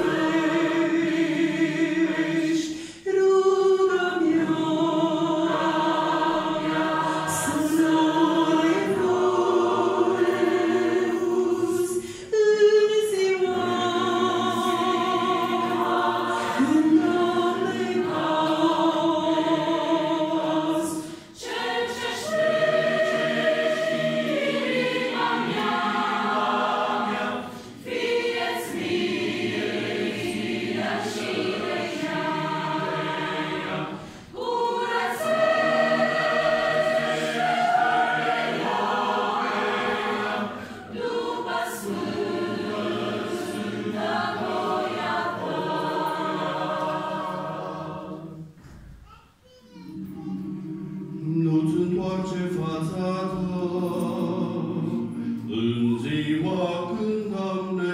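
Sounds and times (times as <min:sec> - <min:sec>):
choir singing: 0:00.0 - 0:48.7, 0:49.8 - 0:57.9.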